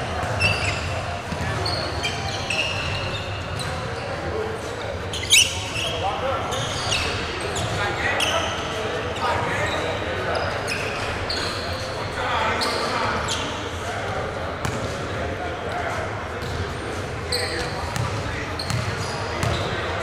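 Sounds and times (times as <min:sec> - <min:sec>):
voices talking indistinctly: 0:00.0 - 0:20.0
basketballs bouncing on wood floor: 0:17.9 - 0:19.6.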